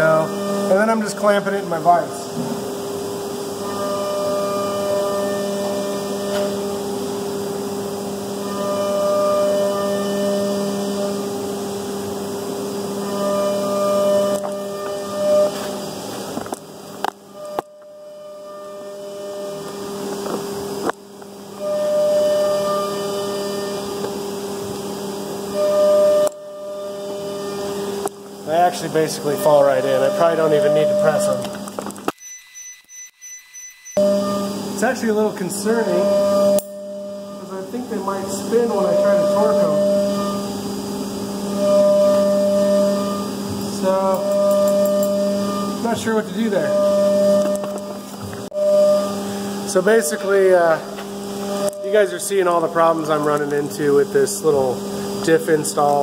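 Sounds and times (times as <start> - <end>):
low machine hum: 0.0 - 32.1, 34.0 - 56.0
higher tone: 28.7 - 31.6, 32.2 - 40.5.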